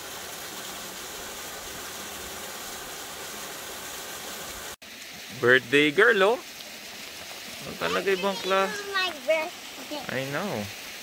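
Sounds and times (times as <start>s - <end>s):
waterfall rushing into pool: 0.0s - 11.0s.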